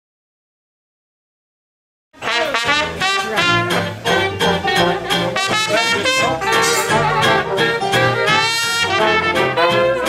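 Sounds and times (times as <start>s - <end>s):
clarinet: 2.2s - 10.0s
guitar: 2.2s - 10.0s
plucked upright bass: 2.2s - 10.0s
trombone: 2.2s - 10.0s.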